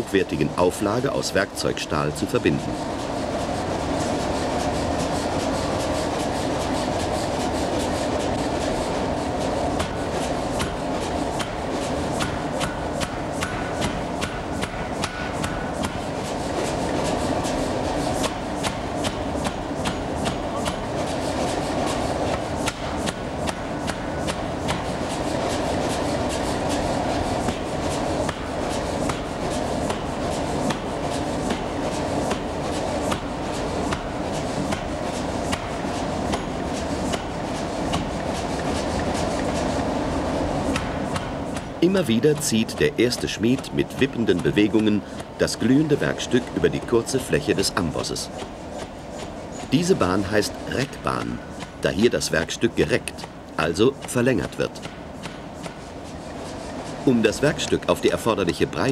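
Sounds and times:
machinery noise: 0:00.0 - 0:58.9.

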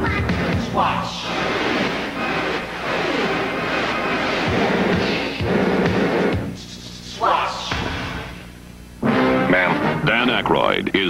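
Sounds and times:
loud music: 0:00.0 - 0:06.8.

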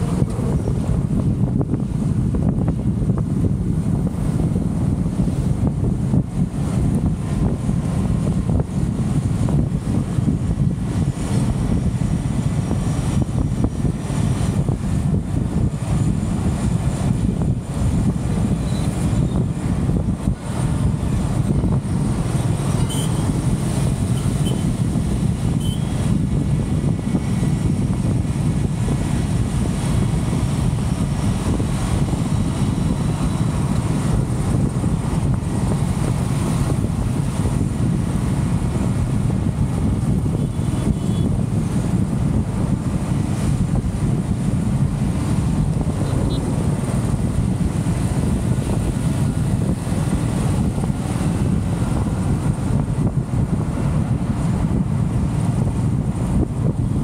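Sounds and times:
vehicle road noise: 0:00.0 - 0:57.0
wind rumble on microphone: 0:00.0 - 0:57.0.

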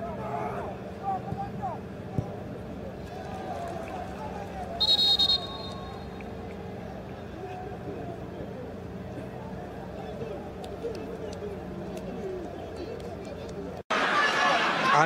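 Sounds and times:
crowd and players shouting: 0:00.0 - 0:06.1, 0:13.9 - 0:15.0
referee's whistle blast: 0:04.8 - 0:06.2.

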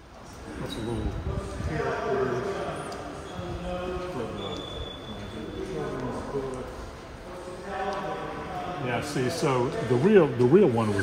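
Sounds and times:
people talking in echoing hall: 0:00.0 - 0:11.0.

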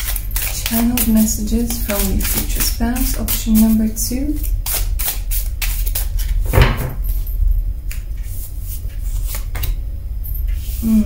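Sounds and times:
cards being shuffled: 0:00.0 - 0:06.4.

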